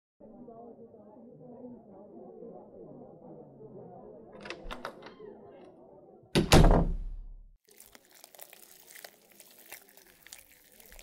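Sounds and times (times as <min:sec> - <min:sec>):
door clicks: 0:04.4 - 0:05.1
door shutting with heavy thud: 0:06.4 - 0:07.2
rustling and crinkling: 0:07.7 - 0:11.0.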